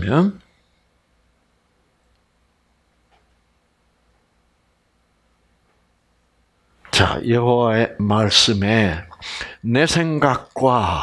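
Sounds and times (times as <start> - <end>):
man speaking: 0.0 - 0.5, 6.9 - 11.0.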